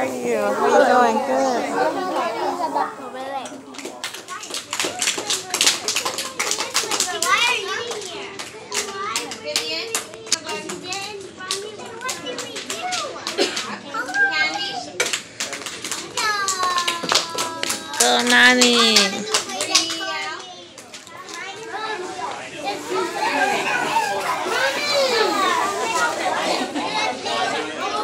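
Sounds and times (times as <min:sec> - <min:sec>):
young children chattering: 0:00.0 - 0:28.0
hand claps: 0:03.4 - 0:13.8, 0:15.0 - 0:21.4.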